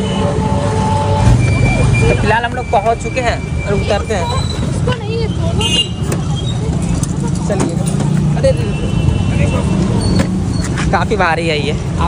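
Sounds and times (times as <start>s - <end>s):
vehicle horn toot: 0.0s - 2.3s, 5.6s - 6.1s
street traffic: 0.0s - 12.0s.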